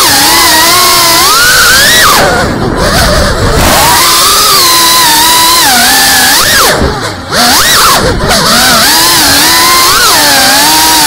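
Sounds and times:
quadcopter motors and propellers whining: 0.0s - 11.0s.

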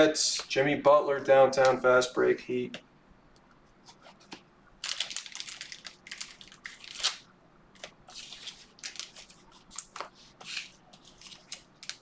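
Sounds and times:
plastic wrapping crinkling: 4.8s - 12.0s.

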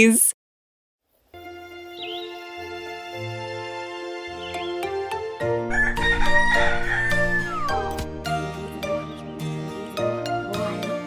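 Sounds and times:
light background music: 1.4s - 11.0s
rooster crowing: 5.7s - 8.0s.

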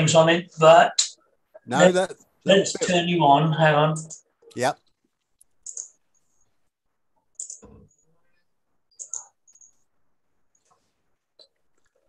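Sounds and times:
mouse and keyboard clicking: 5.4s - 6.0s, 7.4s - 7.8s, 8.9s - 9.8s.

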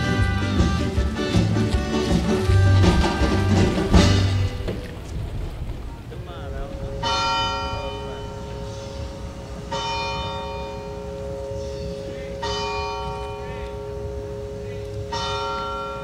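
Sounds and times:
held low tone: 2.3s - 15.1s
bell ringing: 6.5s - 16.0s.

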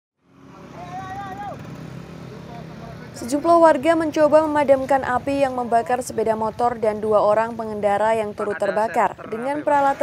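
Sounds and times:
road traffic passing: 0.2s - 10.0s.

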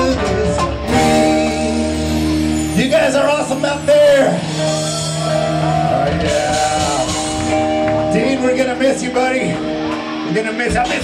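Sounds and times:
guitar chord strummed and ringing: 0.0s - 11.0s
live rock band playing: 0.0s - 11.0s.

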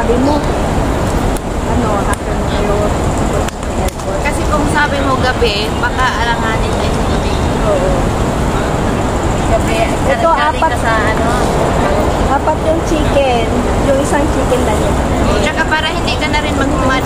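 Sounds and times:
road traffic rumble: 0.0s - 17.0s
women's conversation: 0.0s - 17.0s.

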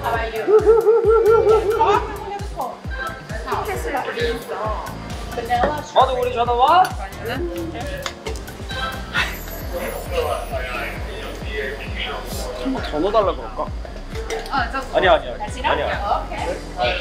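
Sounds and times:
background music with steady beat: 0.0s - 17.0s.

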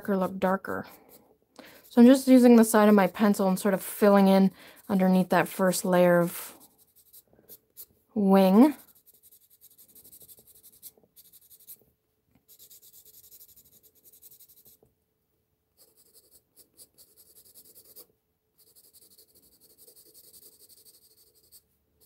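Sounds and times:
pencil shading on paper: 0.1s - 11.8s, 12.5s - 14.8s, 15.8s - 22.0s.

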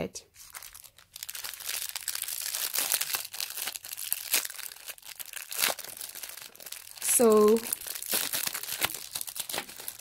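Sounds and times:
plastic wrapping crinkling: 0.4s - 10.0s.

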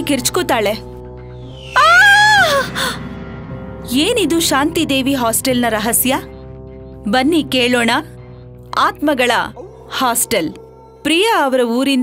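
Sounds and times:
background music: 0.0s - 12.0s
woman screaming: 1.7s - 3.0s.

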